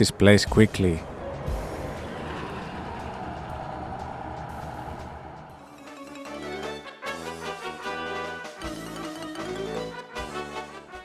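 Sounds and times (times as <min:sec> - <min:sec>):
bus engine passing by: 0:00.6 - 0:05.8.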